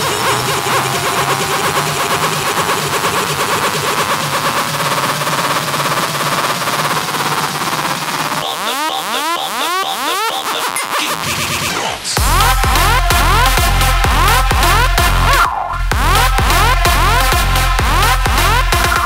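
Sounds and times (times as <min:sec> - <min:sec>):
electronic dance music: 0:00.0 - 0:19.0
rising synth sweeps: 0:00.0 - 0:19.0.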